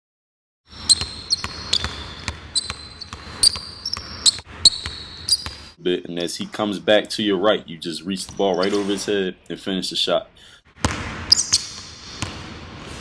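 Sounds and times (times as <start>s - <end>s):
basketball bouncing on wooden floor: 0.7s - 5.7s, 10.8s - 12.7s
sneakers squeaking: 0.7s - 5.8s, 8.2s - 9.1s, 10.8s - 13.0s.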